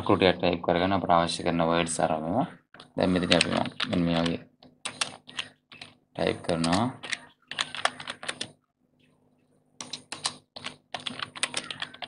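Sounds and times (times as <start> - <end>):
computer keyboard typing: 2.7 - 8.6, 9.8 - 12.0.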